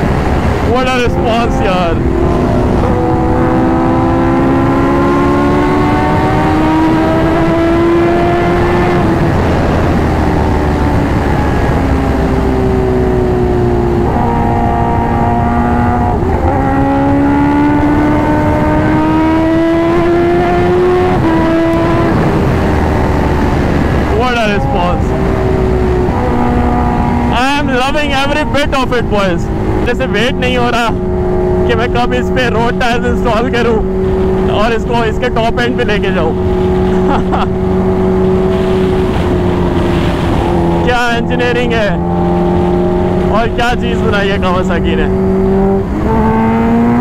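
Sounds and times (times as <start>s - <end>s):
motorcycle engine pulling hard: 0.0s - 47.0s
wind rush: 0.0s - 47.0s.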